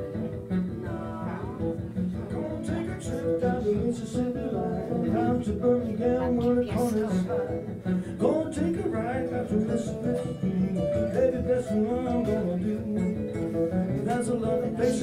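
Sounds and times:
acoustic guitar strumming: 0.0 - 15.0
guitar picking a melody: 0.0 - 15.0.

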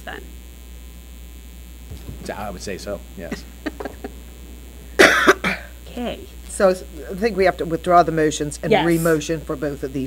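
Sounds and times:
low mains hum: 0.0 - 10.0
person coughing: 5.0 - 5.8.

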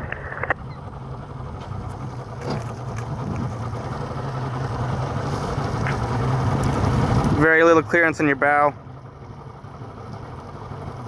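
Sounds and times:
boat motor humming: 0.0 - 11.0.

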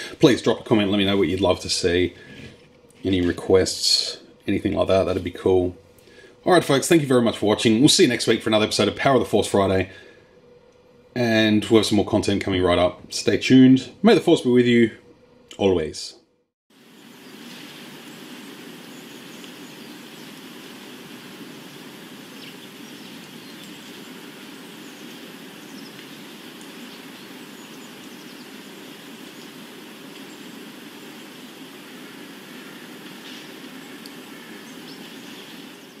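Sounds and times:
faint bird chirps: 16.8 - 36.0.

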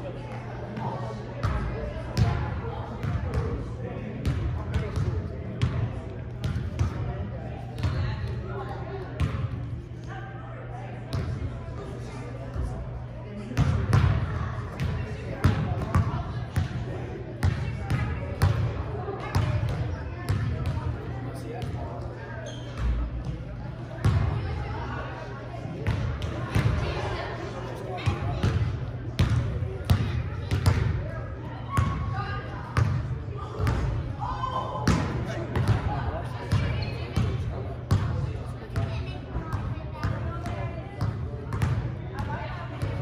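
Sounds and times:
murmur of voices: 0.0 - 43.0
basketballs bouncing on wooden floor: 28.4 - 30.9.

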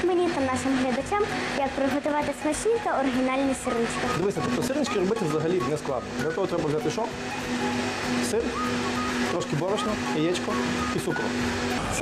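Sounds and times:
background music steady note: 0.0 - 12.0.

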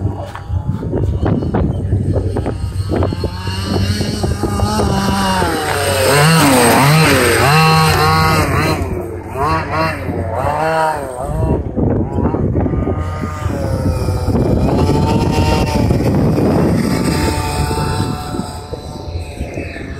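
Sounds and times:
model buggy engine revving: 0.0 - 19.9.

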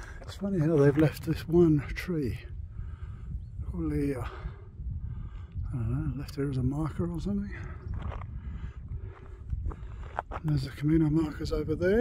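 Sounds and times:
footsteps on gravel: 0.0 - 1.2, 7.7 - 8.4, 9.0 - 11.2
wind buffeting microphone: 0.0 - 12.0.

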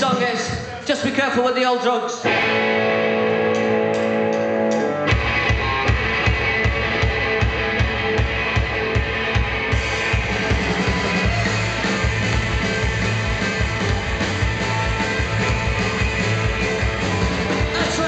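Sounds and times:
punk rock band playing: 0.0 - 1.1, 2.2 - 18.0
electric guitar chord ringing: 2.2 - 18.0.

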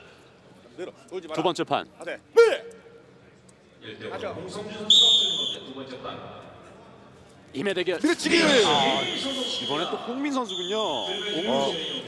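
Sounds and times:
referee's whistle blast: 4.9 - 5.6, 8.6 - 12.0.

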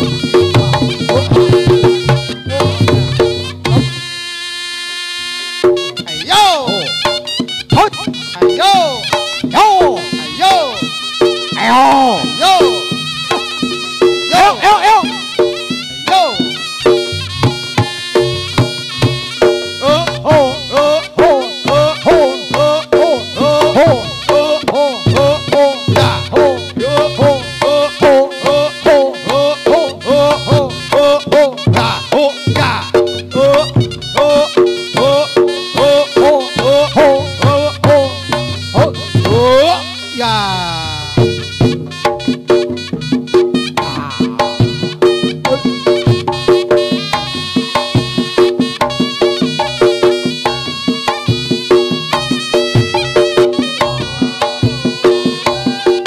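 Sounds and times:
buzzing shawm melody: 0.0 - 56.0
sharp hand drum strokes: 0.0 - 56.0.

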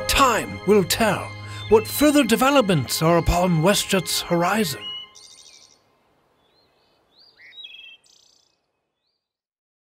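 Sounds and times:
faint birds chirping: 0.2 - 9.4.

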